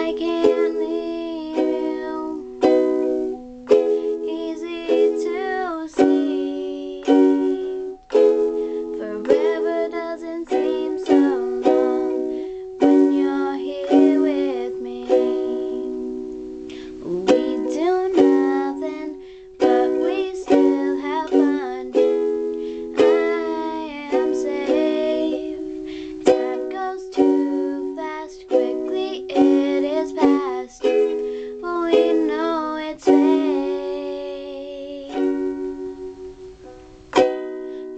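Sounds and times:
girl singing: 0:00.0 - 0:37.9
ukulele strumming chords: 0:00.0 - 0:37.9.

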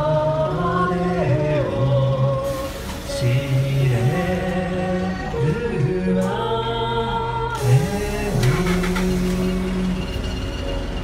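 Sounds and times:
small group singing a hymn: 0:00.0 - 0:10.0.

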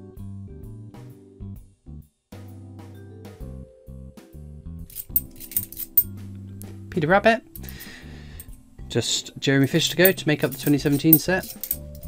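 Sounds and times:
metal coins clinking: 0:04.9 - 0:06.2, 0:07.6 - 0:08.7, 0:09.7 - 0:12.0.

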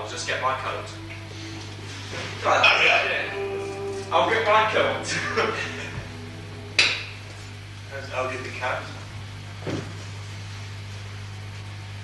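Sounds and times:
amplifier electrical hum: 0:00.0 - 0:12.0.

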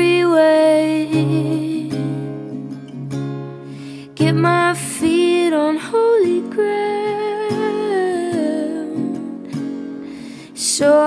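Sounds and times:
acoustic guitar strummed: 0:00.0 - 0:11.0.

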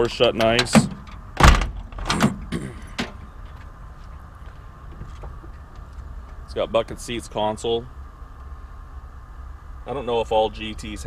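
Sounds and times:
throaty vocal sound: 0:02.1 - 0:03.0.

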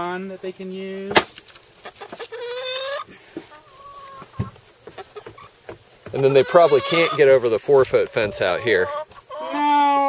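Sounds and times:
hen calling: 0:01.8 - 0:10.0.

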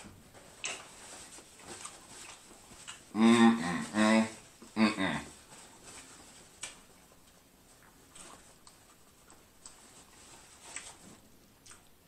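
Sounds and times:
mouth sounds of chewing: 0:00.4 - 0:12.0.

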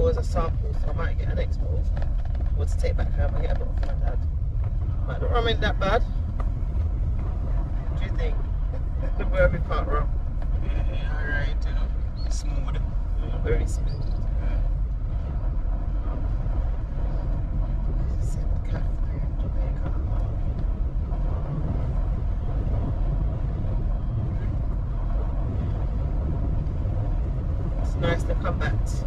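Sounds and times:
car engine and tyres rumbling: 0:00.0 - 0:29.0.

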